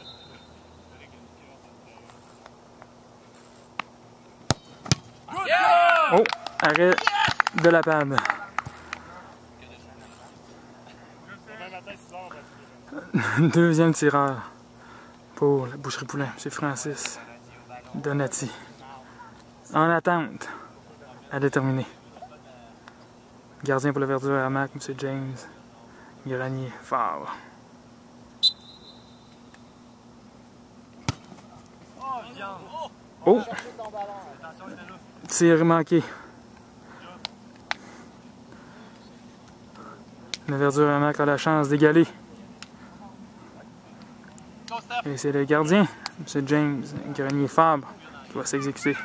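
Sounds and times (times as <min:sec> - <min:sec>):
referee's whistle blast: 0:00.0 - 0:01.0, 0:28.4 - 0:29.4
steady low hum: 0:00.0 - 0:49.0
ball kicked with sharp thud: 0:04.5 - 0:05.1, 0:31.0 - 0:31.3.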